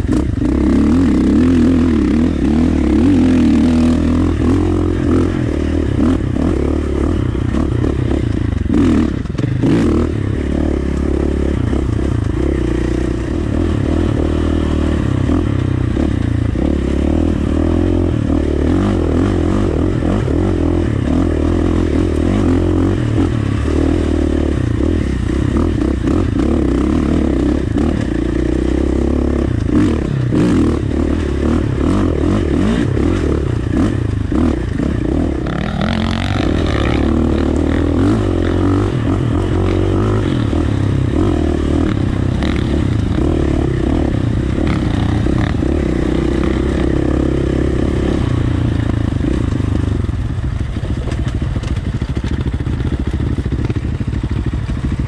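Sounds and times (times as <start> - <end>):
dirt bike engine: 0.0 - 55.0.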